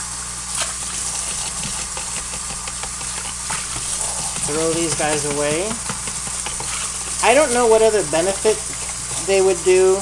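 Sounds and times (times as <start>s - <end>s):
spoon scraping in container: 0.6s - 9.7s.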